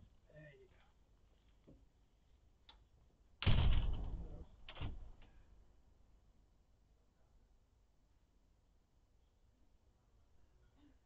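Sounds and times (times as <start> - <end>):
faint clicks: 2.6 - 2.9.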